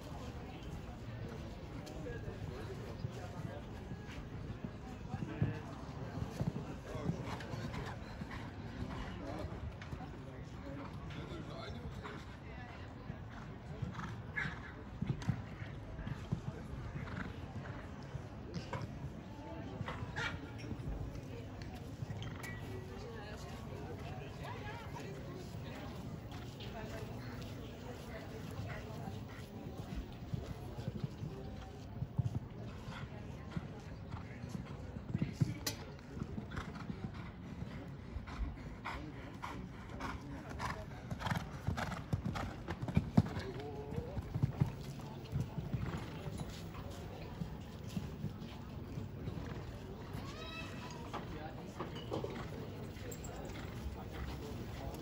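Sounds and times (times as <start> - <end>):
horse hoofbeats cantering on sand: 2.7 - 10.0, 19.8 - 51.0.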